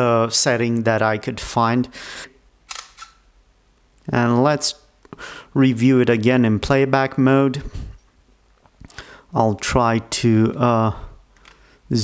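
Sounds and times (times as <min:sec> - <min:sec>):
camera shutter clicks: 0:02.7 - 0:03.2.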